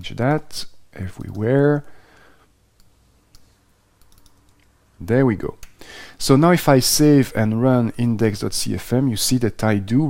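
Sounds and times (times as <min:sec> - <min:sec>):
computer mouse clicks: 0:02.2 - 0:04.7.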